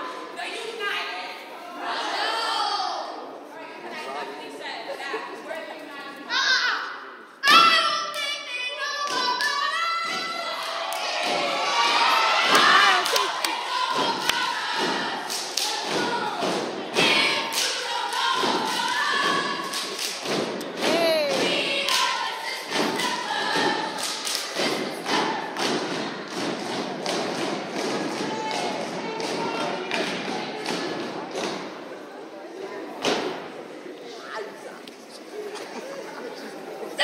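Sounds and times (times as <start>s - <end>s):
people shouting and cheering: 6.3s - 32.0s
people clapping: 9.0s - 31.8s.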